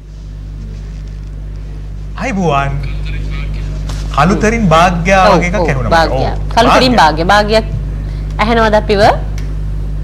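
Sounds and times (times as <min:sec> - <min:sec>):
steady low hum: 0:00.0 - 0:10.0.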